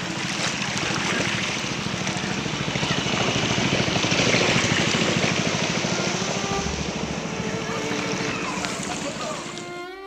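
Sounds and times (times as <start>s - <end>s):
boat motor puttering: 0.0s - 10.0s
water rushing: 0.0s - 10.0s.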